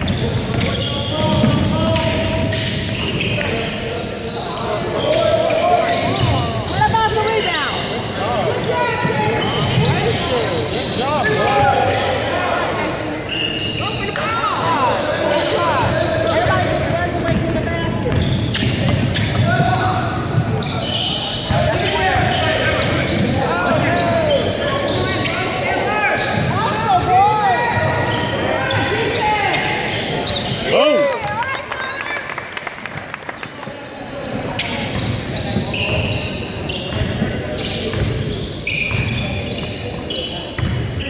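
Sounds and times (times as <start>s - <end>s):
sneakers squeaking: 0.0s - 32.0s, 33.4s - 41.0s
players and spectators voices: 0.0s - 41.0s.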